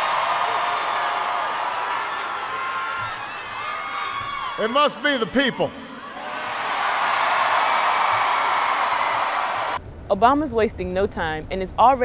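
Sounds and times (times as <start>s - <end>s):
crowd cheering and applauding: 0.0s - 9.8s.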